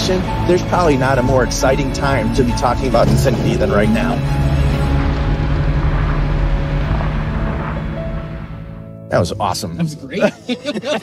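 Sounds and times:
car engine running hard: 0.0s - 8.9s.

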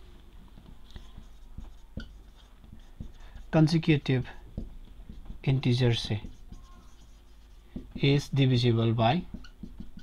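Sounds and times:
marker pen writing on whiteboard: 0.4s - 10.0s
light marker taps: 0.6s - 8.2s, 9.2s - 10.0s.

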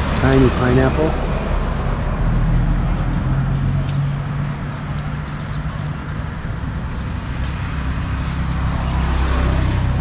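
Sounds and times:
road noise: 0.0s - 10.0s
traffic engine hum: 0.0s - 10.0s.

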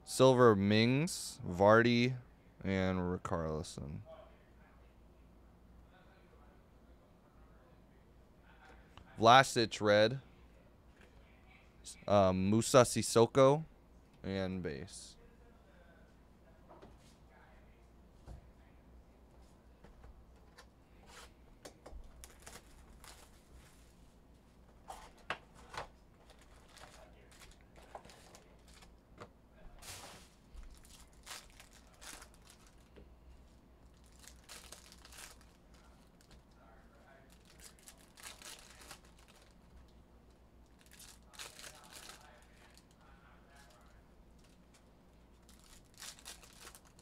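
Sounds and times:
foil wrappers tearing and crinkling: 22.2s - 23.4s, 30.6s - 32.9s, 33.9s - 35.6s, 37.3s - 39.6s, 40.8s - 42.9s, 45.5s - 47.0s.

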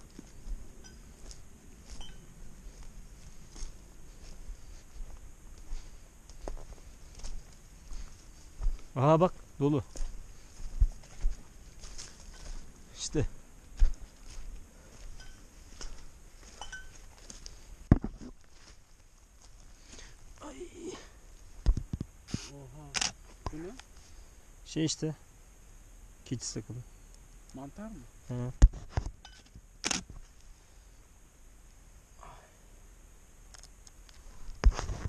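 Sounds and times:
footsteps on dry leaves: 0.0s - 13.0s, 13.6s - 20.0s
small clicks: 33.5s - 34.2s.

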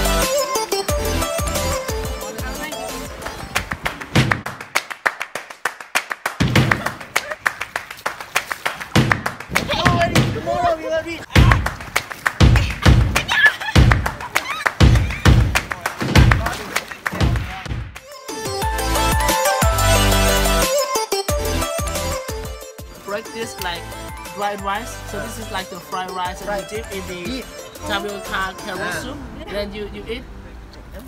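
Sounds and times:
background music with steady beat: 0.0s - 4.3s, 18.0s - 29.1s.

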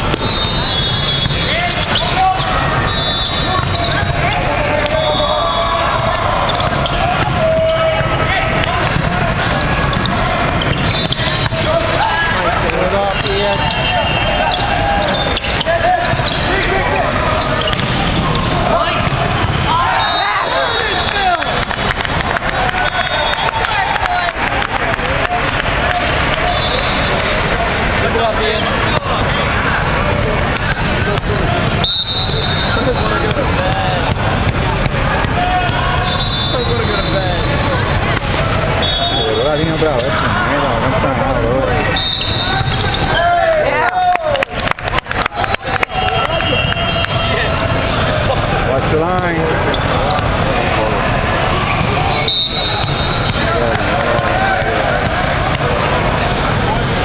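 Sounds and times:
volleyballs struck and bouncing: 0.0s - 5.1s, 5.7s - 36.0s, 37.4s - 38.9s, 41.8s - 45.3s, 47.0s - 51.1s, 51.8s - 57.0s
voices and shouts echoing: 0.0s - 57.0s
referee whistle blasts: 0.1s - 4.1s, 4.8s - 7.0s, 10.6s - 11.6s, 19.8s - 21.5s, 31.8s - 32.8s, 35.7s - 37.6s, 38.8s - 39.8s, 41.8s - 43.3s, 46.0s - 47.6s, 52.1s - 53.6s.

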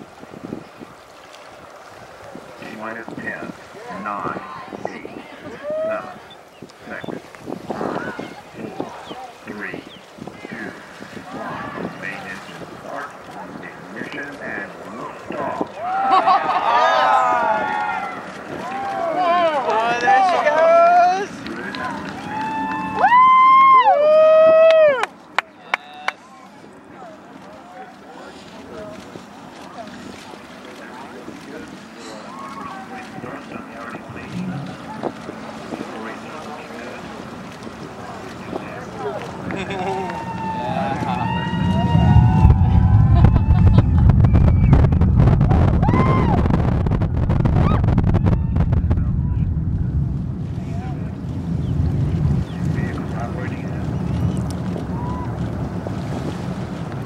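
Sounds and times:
spectators talking: 2.3s - 23.1s, 25.1s - 55.6s
spectators whooping: 5.4s - 6.2s, 15.8s - 25.1s, 39.5s - 49.6s, 54.8s - 55.5s
person whooping: 5.6s - 6.1s, 22.2s - 25.1s, 39.7s - 44.9s, 45.5s - 46.5s
rocket engine rumble with crackling: 6.4s - 15.9s, 17.4s - 23.2s, 27.8s - 57.0s.

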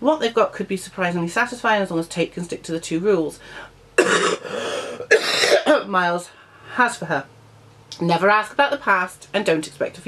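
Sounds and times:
woman coughing: 4.0s - 5.9s.

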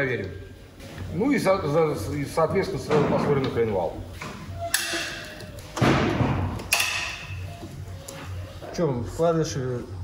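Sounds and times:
heavy thud: 5.8s - 6.6s.

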